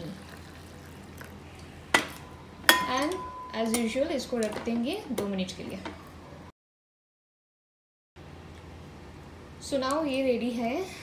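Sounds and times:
metal clinking on glass teapot: 2.7s - 4.0s.

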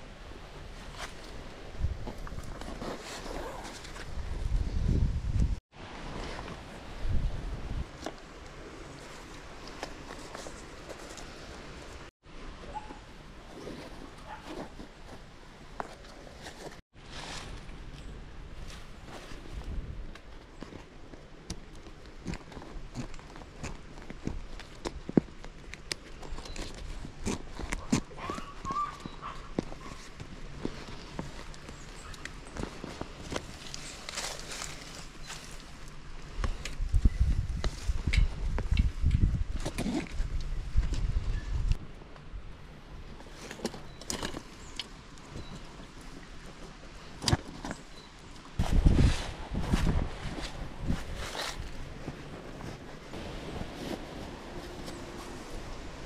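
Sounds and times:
bag fabric rustling: 2.0s - 4.2s.

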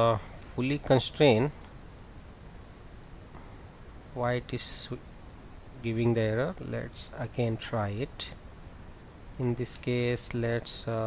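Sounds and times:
high-pitched microphone whine: 0.0s - 11.0s.

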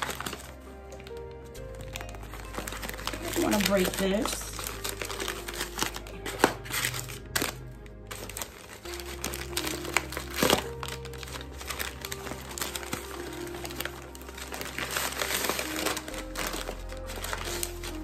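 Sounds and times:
paper crinkling and rustling: 0.0s - 18.0s
sharp paper crackles: 0.0s - 18.0s
soft background music: 0.0s - 18.0s.

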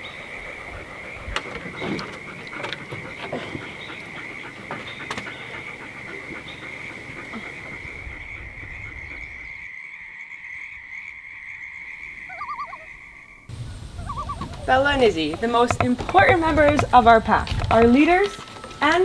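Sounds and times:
frogs chorus calling: 0.0s - 19.0s
short wavering frog call: 12.1s - 14.8s.

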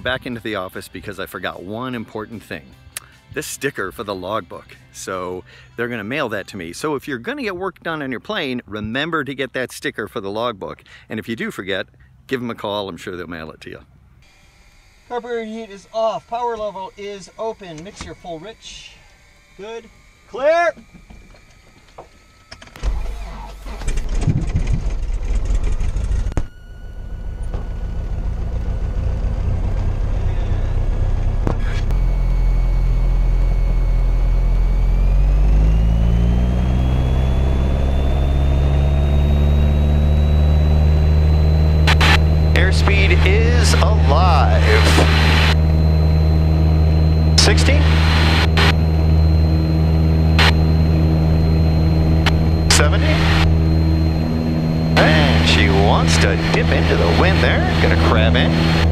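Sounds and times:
airplane piston engine: 14.1s - 58.9s.

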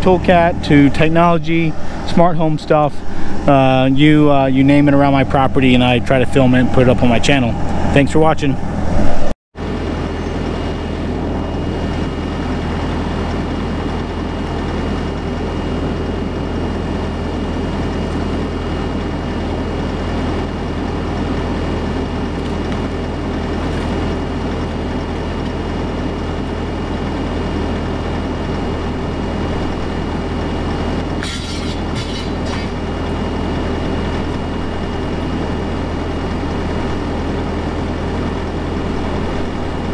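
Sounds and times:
diesel engine idling: 0.0s - 7.2s, 19.0s - 39.9s.

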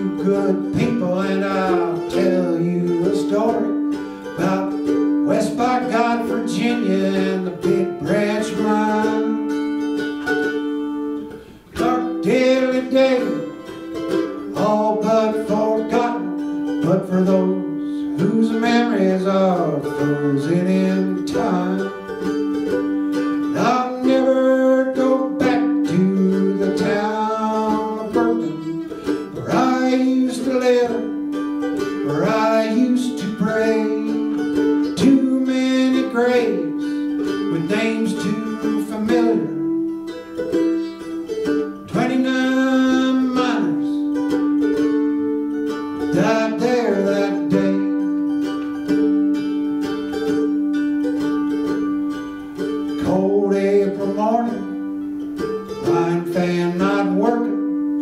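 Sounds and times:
man singing folk ballad: 0.0s - 58.0s
plucked string instrument: 0.0s - 58.0s.

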